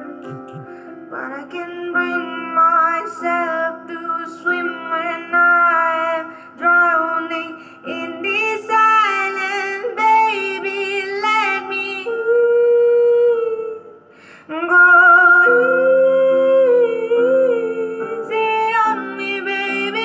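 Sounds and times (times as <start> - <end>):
woman singing a slow ballad: 1.1 - 20.0.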